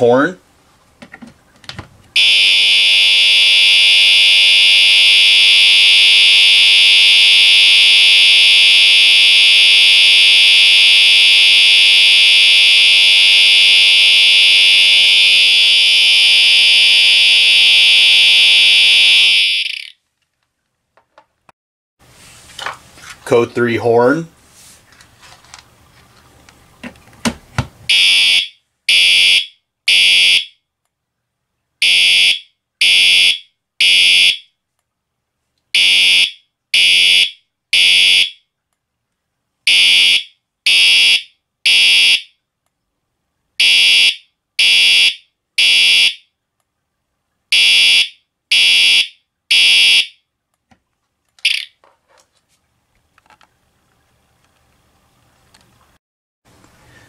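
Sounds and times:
fire alarm horn blasts: 2.2 - 19.9, 27.9 - 30.6, 31.8 - 34.5, 35.8 - 38.4, 39.7 - 42.3, 43.6 - 46.2, 47.5 - 50.2, 51.4 - 51.7.

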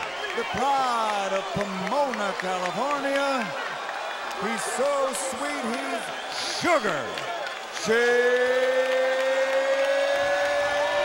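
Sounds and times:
crowd noise: 0.0 - 11.0
man announcing with long held note: 0.3 - 3.5, 4.4 - 7.2, 7.8 - 9.5.

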